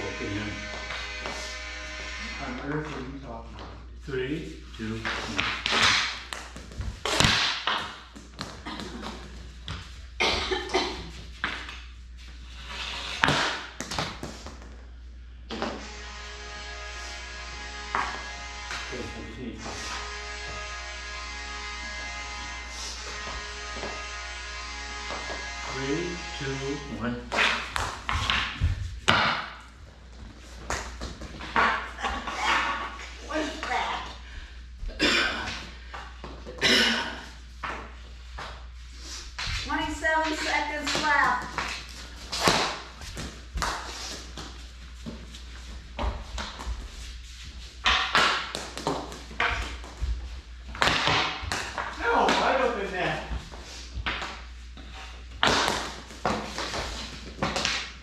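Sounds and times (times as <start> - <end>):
hockey sticks clacking: 5.0 - 8.0, 27.3 - 29.6, 30.6 - 33.7, 40.2 - 44.5, 47.8 - 50.2, 55.4 - 58.0.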